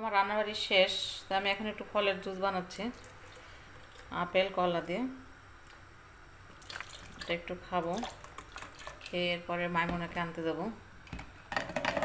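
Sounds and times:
woman's voice: 0.0 - 3.0, 4.1 - 5.2, 7.2 - 8.2, 9.1 - 10.9
milk pouring into blender jug: 6.6 - 7.3.

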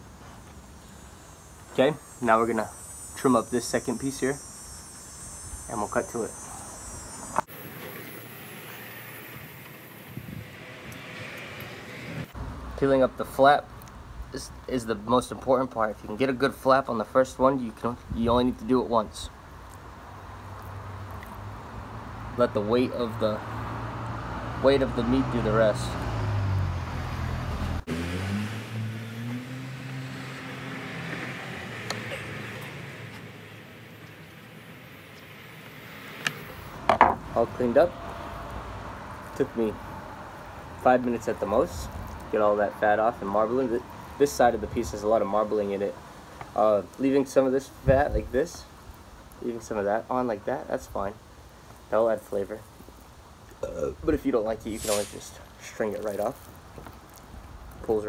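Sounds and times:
passing vehicle engine hum: 0.0 - 12.8, 20.1 - 44.7
outdoor background noise: 0.0 - 58.0
man speaking: 1.7 - 4.4, 5.7 - 6.5, 53.6 - 56.4.

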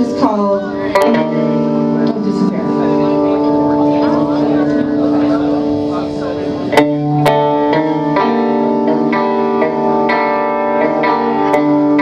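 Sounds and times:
electric guitars ringing chord: 0.0 - 12.0.

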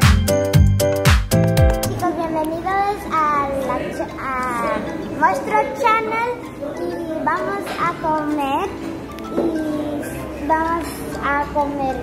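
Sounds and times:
young girls talking: 1.9 - 12.0.

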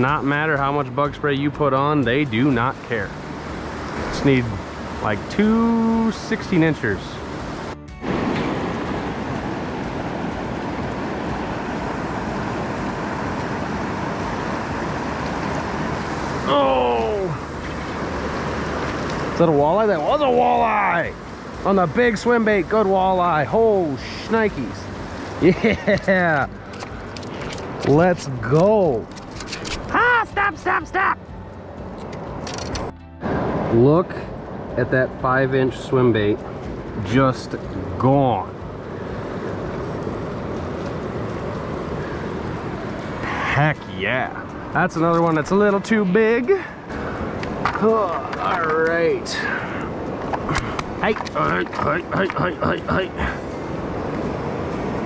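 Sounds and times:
river rapids rushing: 2.2 - 32.5, 35.9 - 55.0
man exclaiming: 16.4 - 17.4, 29.9 - 31.2.

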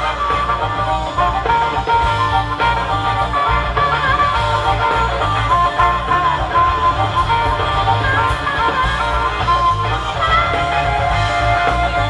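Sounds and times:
drums: 0.0 - 12.0
electric bass: 0.0 - 12.0
harmonica with bending notes: 0.0 - 12.0.

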